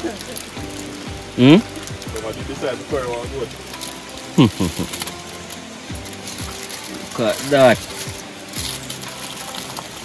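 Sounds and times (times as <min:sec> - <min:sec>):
aluminium foil rustling: 0:00.0 - 0:10.0
soft background music: 0:00.0 - 0:10.0.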